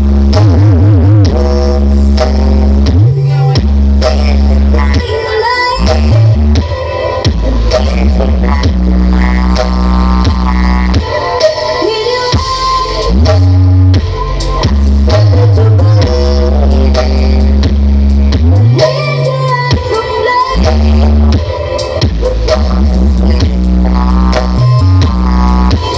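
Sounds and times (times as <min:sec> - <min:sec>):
loud music with deep bass: 0:00.0 - 0:25.9.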